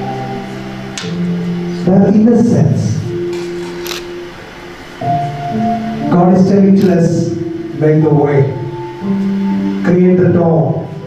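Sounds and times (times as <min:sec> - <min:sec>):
soft background music chords: 0:00.0 - 0:11.0
man speaking into microphone: 0:01.8 - 0:03.1, 0:06.1 - 0:08.6, 0:09.8 - 0:11.0.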